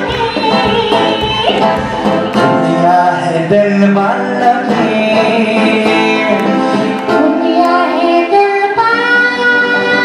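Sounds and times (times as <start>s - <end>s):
acoustic guitar: 0.0s - 10.0s
man singing into a microphone: 0.0s - 10.0s.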